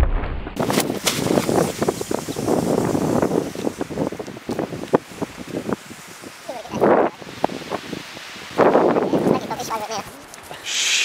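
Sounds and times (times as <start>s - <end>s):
wind buffeting microphone: 0.6s - 10.2s
short hiss: 10.5s - 11.0s.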